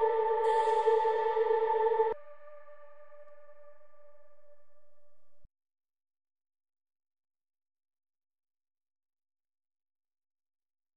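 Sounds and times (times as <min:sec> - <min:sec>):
sustained electronic chord: 0:00.0 - 0:05.4.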